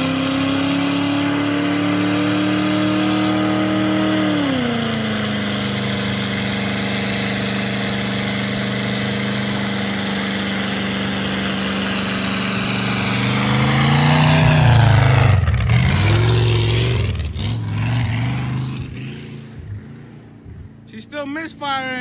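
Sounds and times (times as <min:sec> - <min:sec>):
tires spinning: 0:00.0 - 0:20.6
car engine at high revs: 0:00.0 - 0:22.0.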